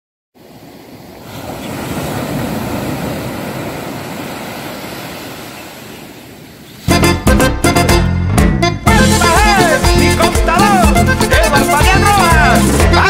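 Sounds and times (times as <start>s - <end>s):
ocean surf washing ashore: 0.4s - 7.2s.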